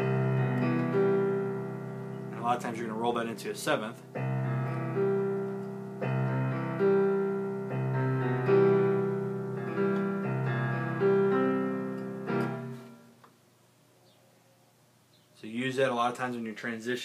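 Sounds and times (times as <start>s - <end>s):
electronic keyboard piano chords: 0.0s - 13.2s.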